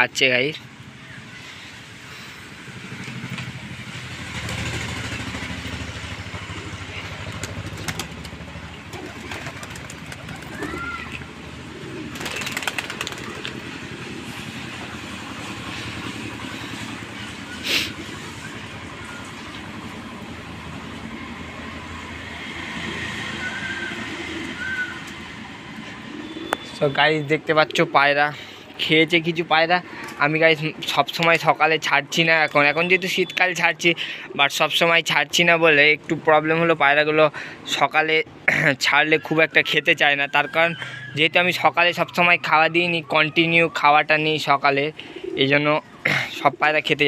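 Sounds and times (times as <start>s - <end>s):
pigeons cooing: 6.3s - 19.4s, 22.6s - 28.8s, 34.0s - 34.8s, 42.7s - 47.0s.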